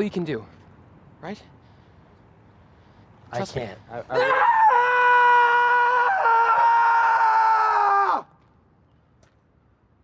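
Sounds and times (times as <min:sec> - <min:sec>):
young man screaming: 0:04.1 - 0:08.3.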